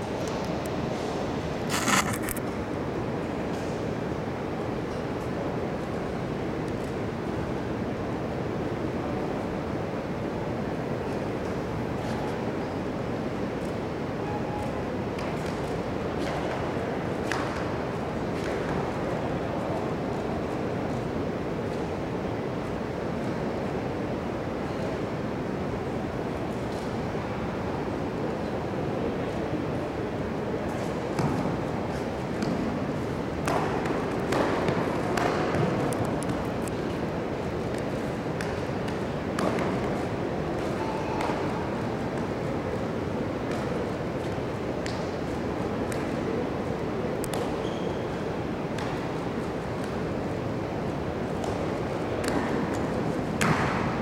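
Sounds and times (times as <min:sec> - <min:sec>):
sports hall background noise: 0:00.0 - 0:54.0
sharp clicks on a mat: 0:01.7 - 0:02.4
uniform snapping: 0:01.7 - 0:02.4.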